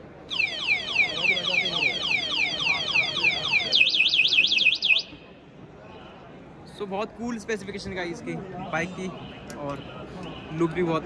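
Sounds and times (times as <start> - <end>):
alarm siren whooping and warbling: 0.3 - 5.1.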